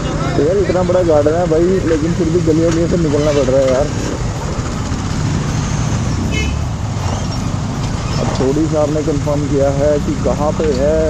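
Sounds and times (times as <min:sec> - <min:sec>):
motorcycle engine idling: 0:00.0 - 0:11.0
high-pitched chirp: 0:05.3 - 0:08.4.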